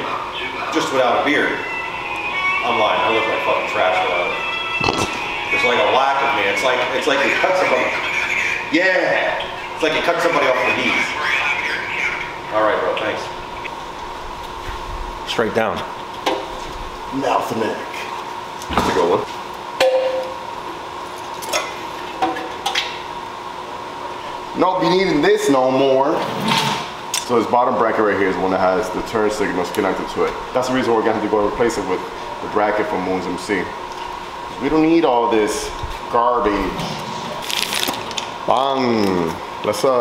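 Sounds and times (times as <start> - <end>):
faint steady hum: 0.0 - 40.0
background music: 1.2 - 8.0
man talking: 5.5 - 13.4, 24.6 - 26.2, 27.2 - 33.8, 34.6 - 36.8, 38.5 - 40.0.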